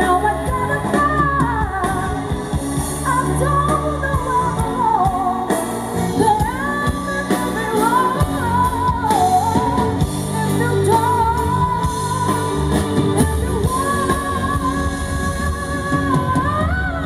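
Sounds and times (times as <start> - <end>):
bass: 0.0 - 17.0
drums: 0.0 - 17.0
woman singing into a microphone: 0.0 - 17.0.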